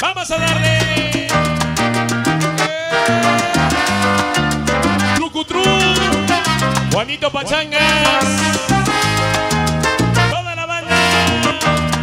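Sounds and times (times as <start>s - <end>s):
loud salsa music: 0.0s - 12.0s.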